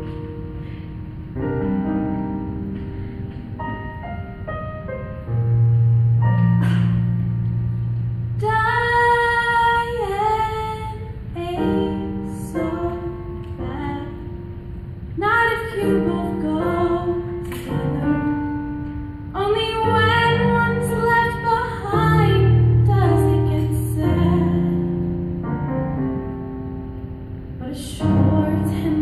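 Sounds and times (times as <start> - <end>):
woman singing a ballad: 8.4 - 14.5, 15.2 - 18.7, 19.3 - 25.1, 27.6 - 29.0.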